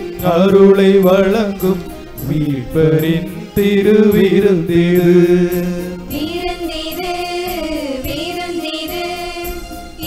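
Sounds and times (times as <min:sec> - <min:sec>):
person singing a hymn: 0:00.0 - 0:10.0.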